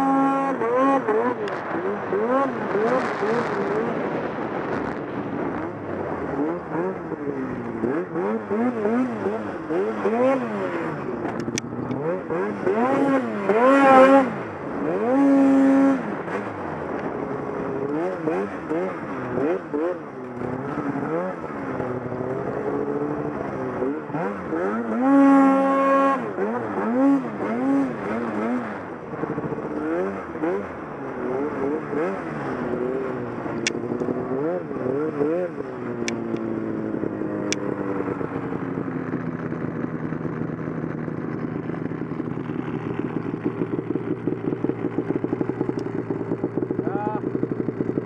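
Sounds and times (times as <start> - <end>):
snowmobile engine revving: 0.0 - 48.0.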